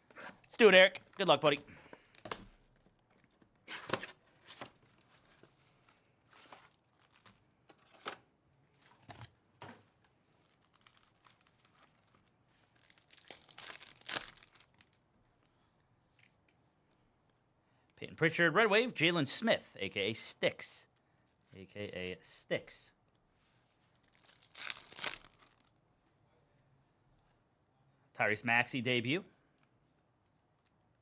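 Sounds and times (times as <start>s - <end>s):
rustling of packaging: 1.0s - 15.0s, 23.8s - 25.7s
foil card packs ripping: 10.4s - 12.2s, 12.8s - 14.9s, 24.1s - 25.7s
plastic shrink wrap tearing: 10.4s - 15.0s, 24.0s - 25.7s.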